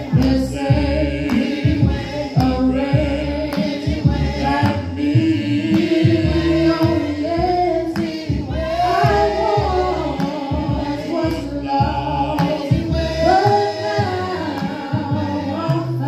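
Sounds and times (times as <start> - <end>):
group singing a hymn: 0.0 - 16.0.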